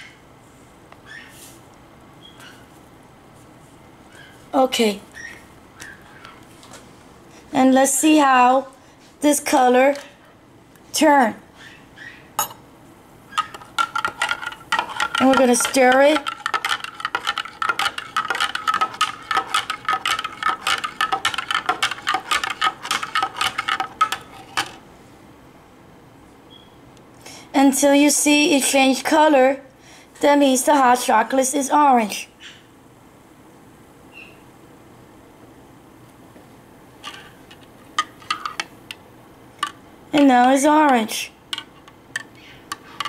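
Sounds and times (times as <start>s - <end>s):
teaspoon clinking in ceramic mug: 13.3s - 24.8s.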